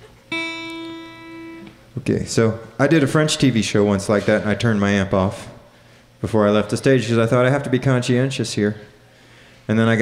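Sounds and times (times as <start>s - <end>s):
plucked guitar note ringing: 0.3s - 1.9s.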